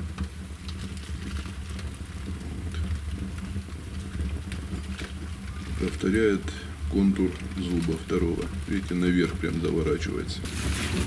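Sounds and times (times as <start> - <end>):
wood fire crackling: 0.0 - 11.0.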